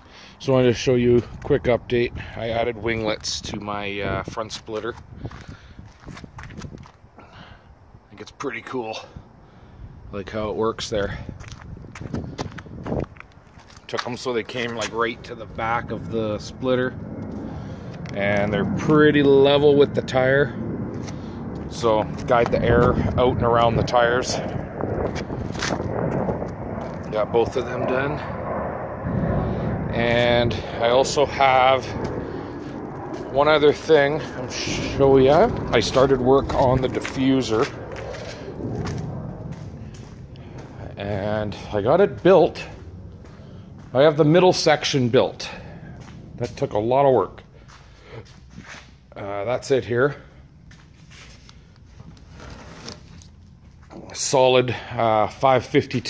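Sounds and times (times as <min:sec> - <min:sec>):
steady low hum: 0:00.0 - 0:56.0
footsteps scuffing on asphalt: 0:04.8 - 0:07.0, 0:11.4 - 0:14.1, 0:36.5 - 0:40.8, 0:42.6 - 0:44.0, 0:47.6 - 0:49.0, 0:50.7 - 0:54.0
low rumble: 0:09.2 - 0:56.0.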